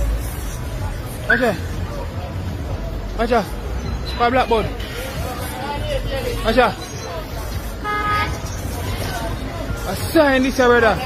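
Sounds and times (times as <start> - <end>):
traffic rumble: 0.0 - 11.0
car horn toot: 7.8 - 8.4.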